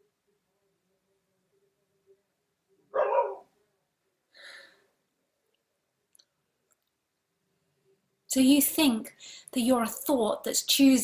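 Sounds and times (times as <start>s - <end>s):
dog barking: 2.9s - 3.5s.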